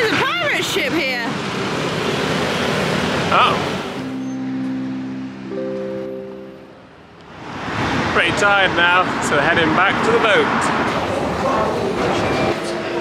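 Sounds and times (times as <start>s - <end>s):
street traffic rushing past: 0.0s - 13.0s
music with sustained held notes: 4.0s - 6.9s.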